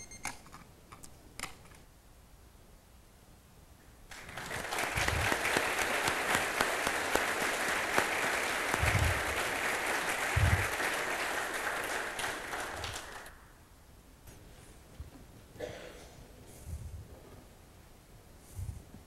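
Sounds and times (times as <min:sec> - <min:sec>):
audience applauding in a hall: 0:04.1 - 0:13.5
dull low thumps: 0:08.8 - 0:09.3, 0:10.4 - 0:10.7.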